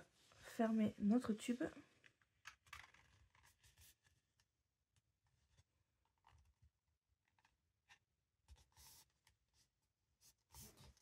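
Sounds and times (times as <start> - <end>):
cardstock rustling and clicking: 2.0 - 4.5.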